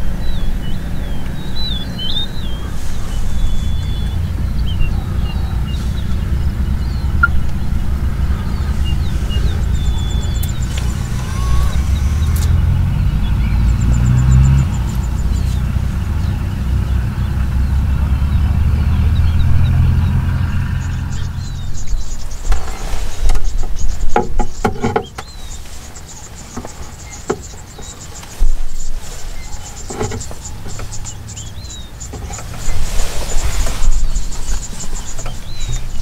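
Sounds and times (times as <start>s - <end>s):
bird chirps: 0.0s - 36.0s
vehicle engine idling: 0.0s - 36.0s
sharp clicks: 9.5s - 12.7s.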